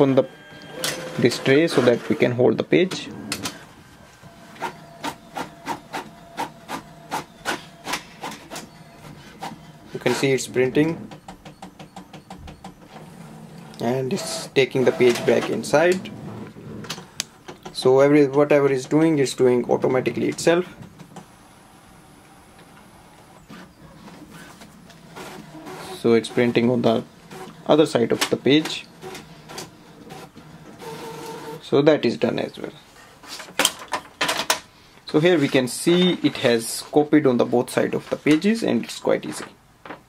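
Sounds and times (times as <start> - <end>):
printer high whine: 0.0 - 16.3, 21.2 - 31.6
printer mechanical strokes: 0.0 - 17.1, 21.2 - 31.6.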